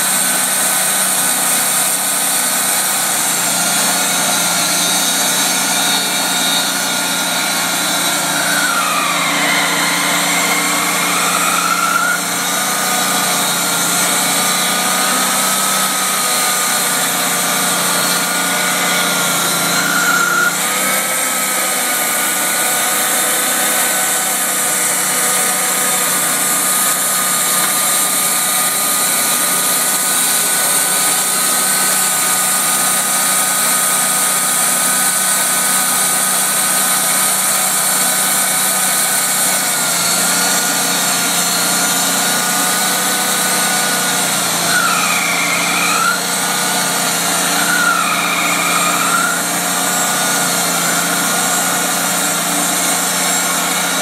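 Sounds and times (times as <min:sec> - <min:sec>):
sawmill saw whining: 0:00.0 - 0:54.0.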